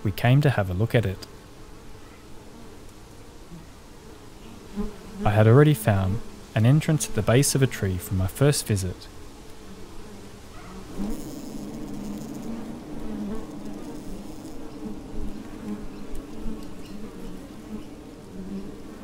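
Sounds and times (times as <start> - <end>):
honeybees buzzing: 0.6 - 19.0.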